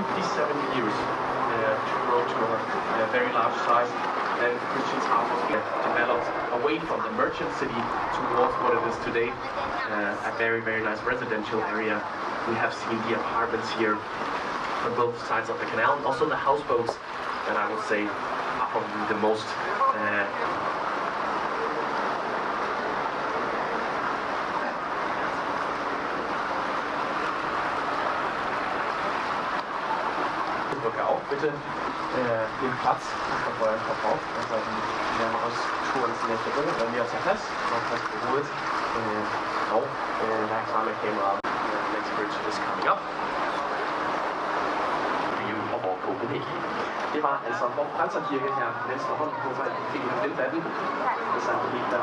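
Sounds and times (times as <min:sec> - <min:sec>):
faint passenger voices: 0:00.0 - 0:26.5, 0:29.7 - 0:44.4, 0:45.3 - 0:52.0
boat engine: 0:00.0 - 0:52.0
water along the hull: 0:00.0 - 0:52.0.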